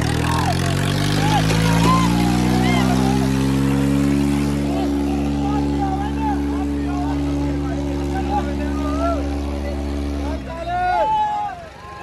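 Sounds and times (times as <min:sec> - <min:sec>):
crowd shouting: 0:00.0 - 0:03.9, 0:04.5 - 0:12.0
tractor diesel engine revving: 0:00.0 - 0:12.0.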